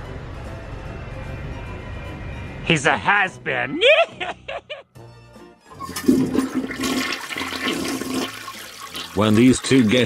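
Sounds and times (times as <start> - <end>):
toilet flushing: 5.7 - 10.0.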